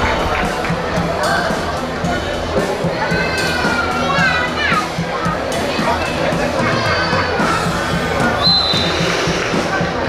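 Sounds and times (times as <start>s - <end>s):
background music: 0.0s - 10.0s
crowd noise: 0.0s - 10.0s.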